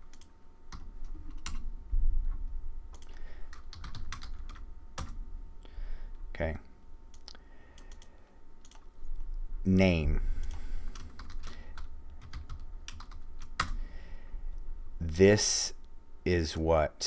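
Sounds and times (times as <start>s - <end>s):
keyboard typing: 0.0s - 1.7s, 2.9s - 5.2s, 7.1s - 9.2s, 10.4s - 13.8s.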